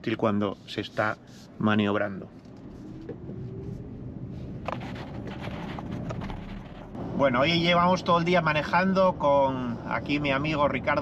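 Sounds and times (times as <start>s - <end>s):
road and tyre noise in car: 0.0s - 11.0s.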